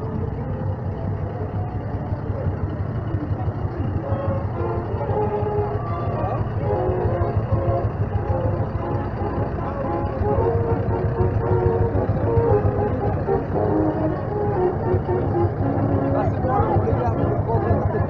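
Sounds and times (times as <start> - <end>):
people's voices: 0.0 - 18.0
tractor diesel engine running: 0.0 - 18.0.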